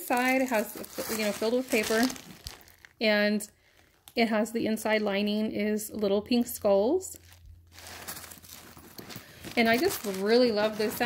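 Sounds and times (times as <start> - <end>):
packing paper crinkling: 0.0 - 3.0, 7.2 - 11.0.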